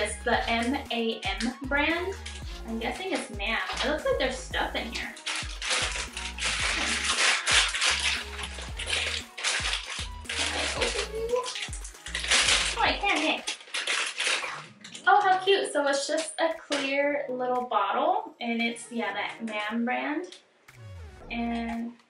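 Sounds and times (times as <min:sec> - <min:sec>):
plastic bag crinkling: 0:00.0 - 0:16.9.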